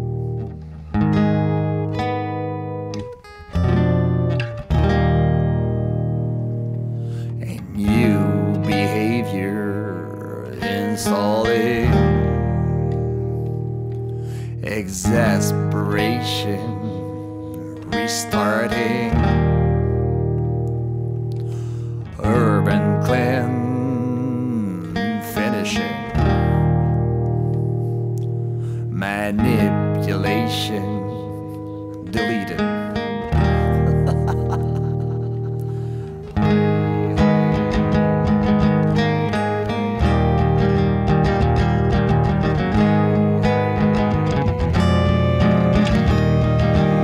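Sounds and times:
acoustic guitar chords: 0.0 - 47.0.

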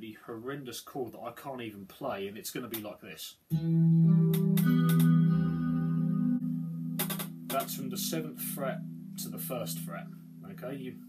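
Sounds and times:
electric guitar chord ringing: 3.5 - 11.0.

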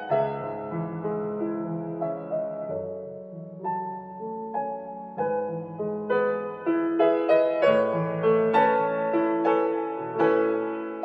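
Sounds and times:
slow gentle piano music: 0.0 - 11.0.

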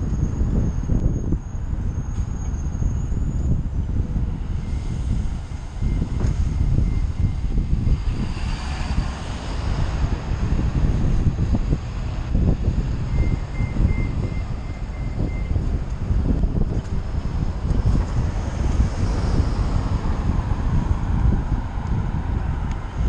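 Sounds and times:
road traffic: 0.0 - 23.0
vehicle passing with a rush: 0.0 - 23.0
wind rumbling on microphone: 0.0 - 23.0.

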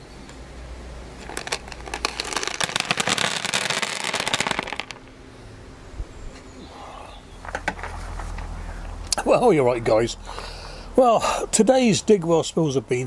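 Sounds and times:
dried beans clattering on plastic: 1.2 - 5.1.

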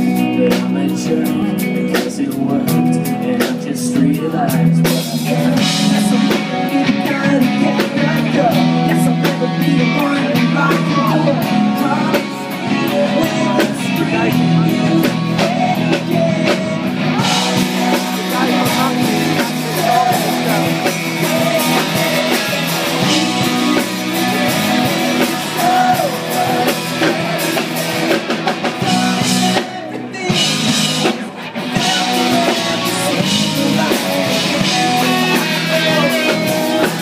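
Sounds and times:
drum kit: 0.0 - 37.0
electric guitars: 0.0 - 37.0
male lead vocal: 0.0 - 37.0.

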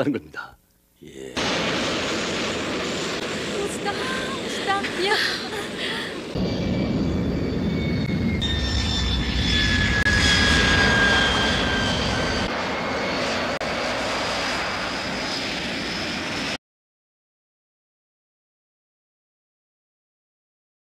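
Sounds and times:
jet engine roar with whine: 1.4 - 16.6.

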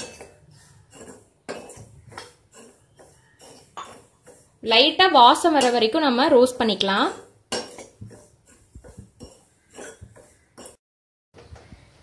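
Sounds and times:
spoon scraping metal pan: 0.0 - 10.8.

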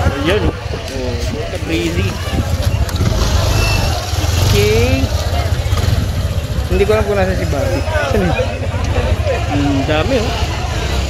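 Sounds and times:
wind on microphone: 0.0 - 7.1
motorcycle engine running: 0.0 - 11.0.

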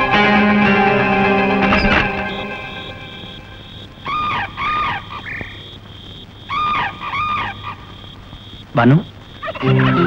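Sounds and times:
faint broken high tone: 1.3 - 4.0
short pitched calls: 1.7 - 10.0.

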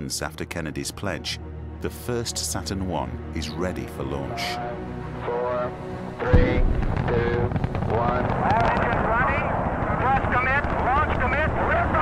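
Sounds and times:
rocket engines rumbling: 6.2 - 12.0.

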